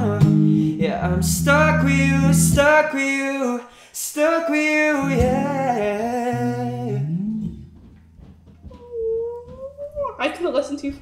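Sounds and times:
woman speaking: 8.8 - 11.0.

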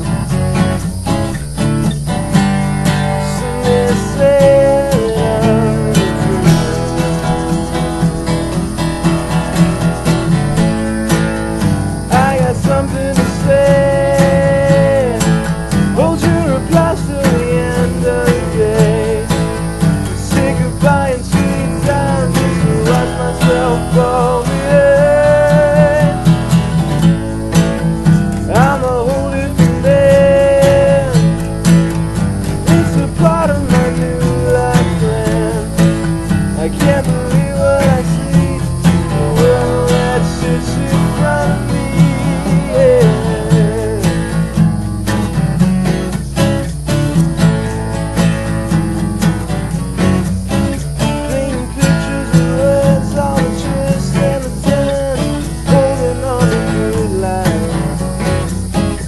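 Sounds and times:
acoustic bass guitar: 0.0 - 59.0
acoustic guitars strummed: 0.0 - 59.0
wavering held melody: 0.0 - 59.0.

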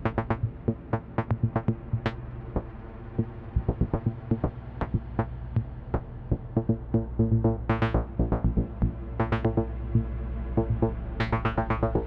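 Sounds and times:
low synthesizer drone: 0.0 - 12.0.

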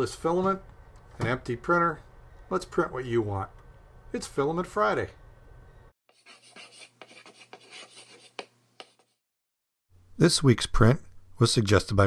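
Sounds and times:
chalk scratching on chalkboard: 6.1 - 9.2.

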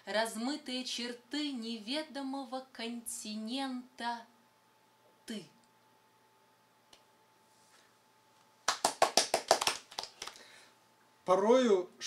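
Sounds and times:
people clapping: 8.6 - 10.5.

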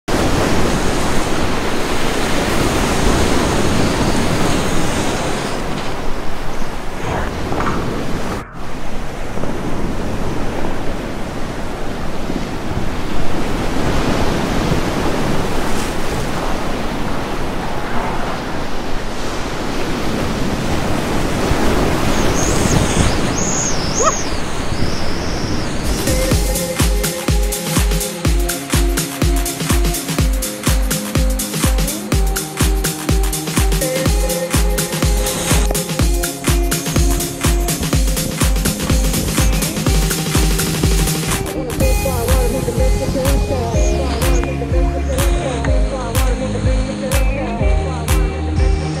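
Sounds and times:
whitewater rapids roaring: 0.1 - 47.3.

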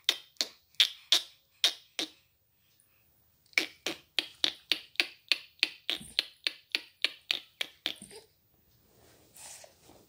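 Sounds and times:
person making sharp clicks: 3.5 - 8.2.

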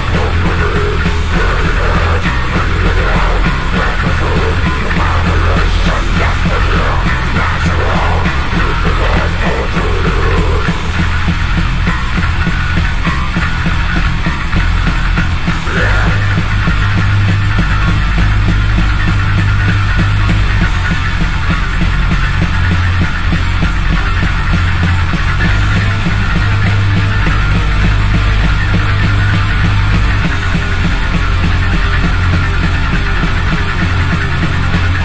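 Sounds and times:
metal band playing: 0.0 - 35.0.

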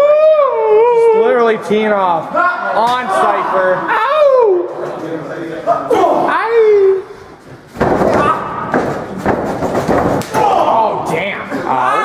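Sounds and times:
shouting voices: 2.2 - 4.8, 10.3 - 12.0.

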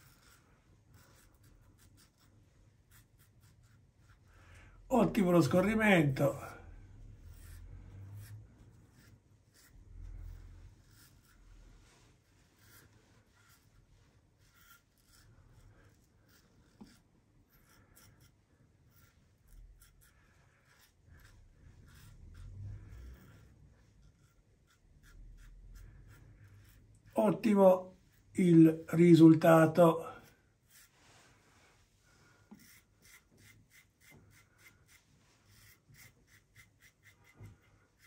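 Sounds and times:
razor scraping stubble: 0.0 - 4.3, 5.0 - 31.0, 32.4 - 38.0.

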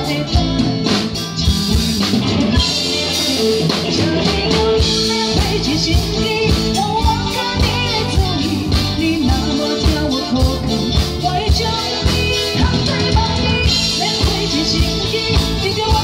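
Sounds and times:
band with drums and guitar: 0.0 - 16.0
woman singing into microphone: 0.0 - 16.0.

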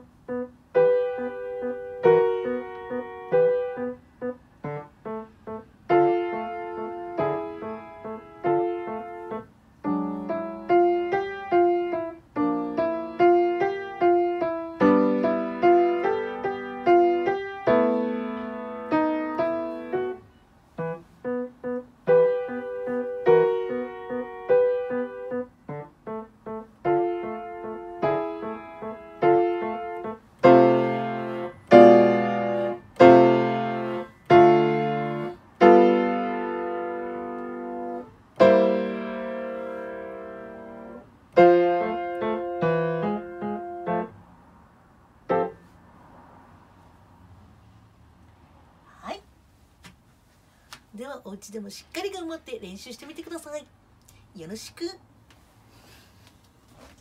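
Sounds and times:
piano playing: 0.0 - 44.2, 45.3 - 45.6.

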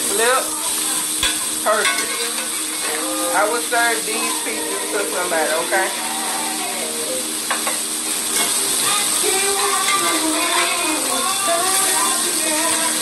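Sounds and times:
fish sizzling in a skillet: 0.0 - 13.0
spatula turning fish: 1.1 - 6.0.

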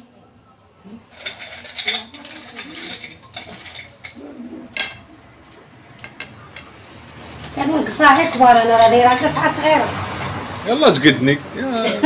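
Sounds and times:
sweets clinking on china plate: 1.1 - 6.7.

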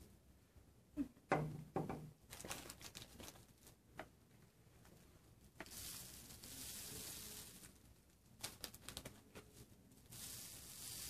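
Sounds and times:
plastic bag and paper crinkling: 2.2 - 3.8, 5.6 - 11.0.

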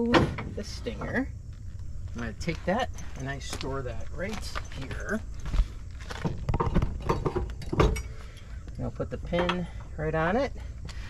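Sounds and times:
steel parts knocking and clinking: 6.4 - 8.5, 9.2 - 9.9.

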